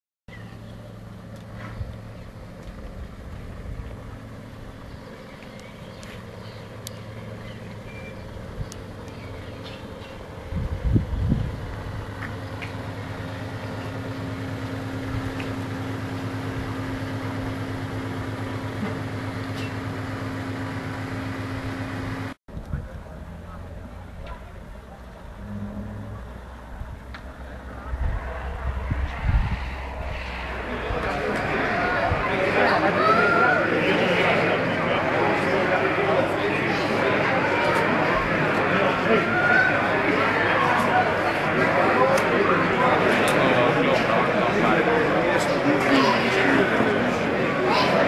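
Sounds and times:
loud low rumble: 0:00.4 - 0:33.0
machine humming: 0:00.5 - 0:22.4, 0:25.1 - 0:37.4.

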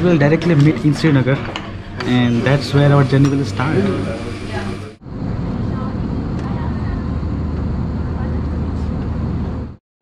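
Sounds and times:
airliner cabin hum: 0:00.0 - 0:09.8.

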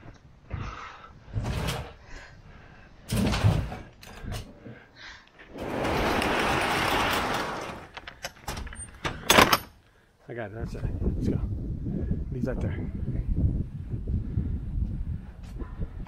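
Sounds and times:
roll-up door rolling down: 0:05.5 - 0:09.5.

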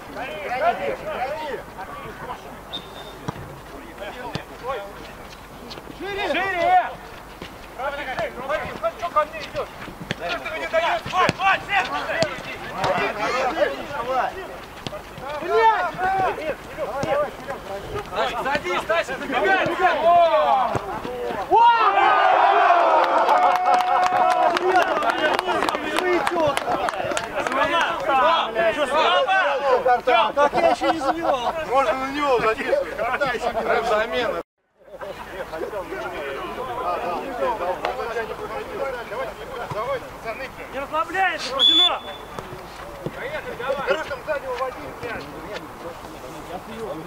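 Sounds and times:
referee's whistle blast: 0:02.7 - 0:03.3, 0:41.4 - 0:42.4
men calling out: 0:08.0 - 0:23.1
men shouting: 0:15.2 - 0:17.4, 0:18.0 - 0:26.6.

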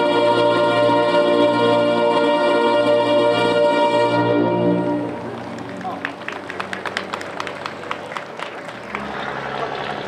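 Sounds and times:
small crowd clapping: 0:04.9 - 0:10.0.

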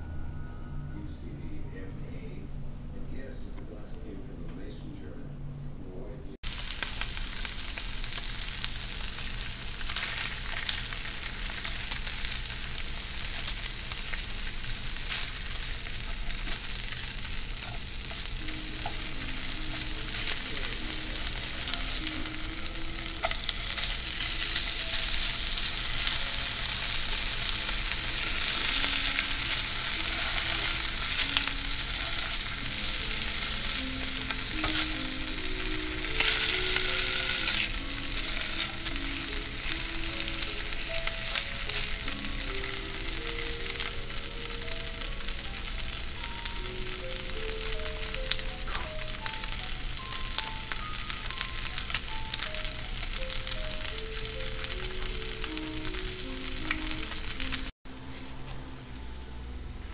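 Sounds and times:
bacon sizzling in a frying pan: 0:06.4 - 0:57.7.

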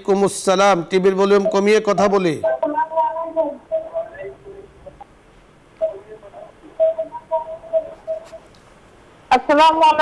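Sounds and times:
muffled voice over telephone: 0:01.4 - 0:04.9, 0:05.8 - 0:08.5.

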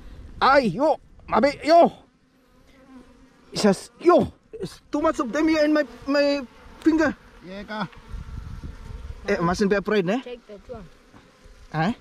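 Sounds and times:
bees buzzing: 0:01.4 - 0:12.0.

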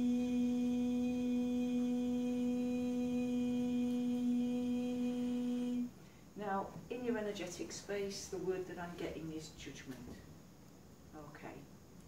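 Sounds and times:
woman humming: 0:00.0 - 0:05.9
woman speaking: 0:06.4 - 0:10.2, 0:11.2 - 0:11.7.

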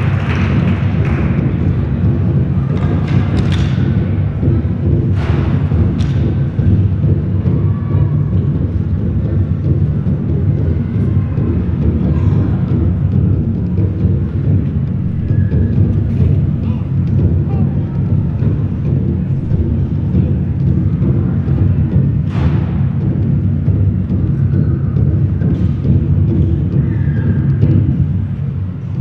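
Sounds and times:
faint murmuring voices: 0:00.0 - 0:29.0
low venue rumble: 0:00.0 - 0:29.0.

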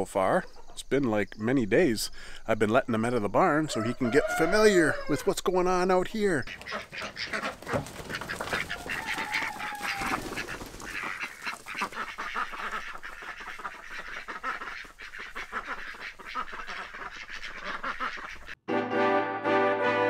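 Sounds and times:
ducks quacking: 0:03.3 - 0:18.6.

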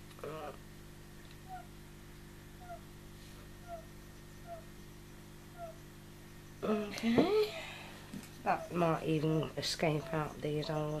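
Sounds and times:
steady low hum: 0:00.0 - 0:11.0
frogs chirping: 0:01.4 - 0:01.8, 0:02.5 - 0:07.0, 0:08.3 - 0:11.0.

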